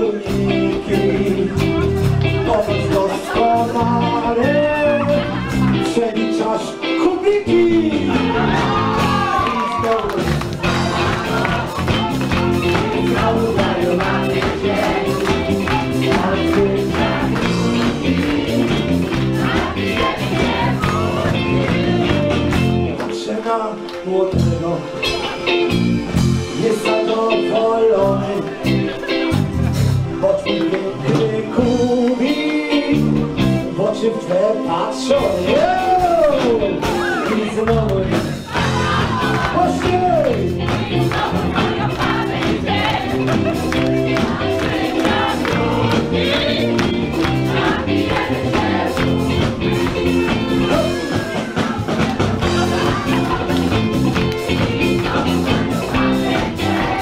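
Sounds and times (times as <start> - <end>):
crowd singing along: 0.0 - 7.0, 7.6 - 25.8, 26.4 - 57.0
man singing into a microphone: 0.0 - 8.4, 12.9 - 14.3, 15.8 - 18.7, 21.8 - 25.3, 26.5 - 29.0, 30.1 - 38.4
live dance band music: 0.0 - 57.0.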